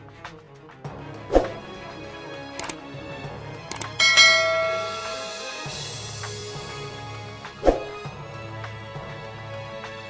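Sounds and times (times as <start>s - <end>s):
background music: 0.0s - 10.0s
quick clicks: 3.7s - 4.0s
bright bell ding: 3.8s - 5.8s.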